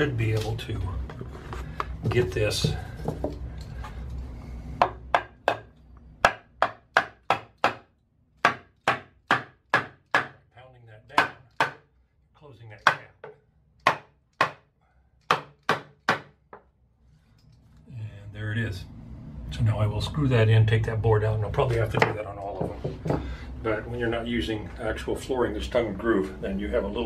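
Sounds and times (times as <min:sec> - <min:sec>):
hammer striking wooden board: 0:04.8 - 0:10.4, 0:11.2 - 0:11.9, 0:12.8 - 0:14.7, 0:15.3 - 0:16.6.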